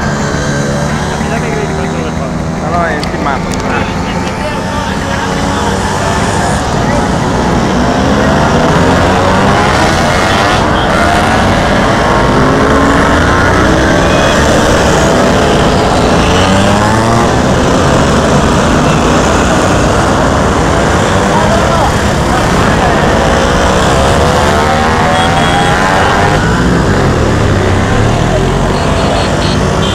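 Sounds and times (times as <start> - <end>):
scooter engines passing: 0.0 - 29.9.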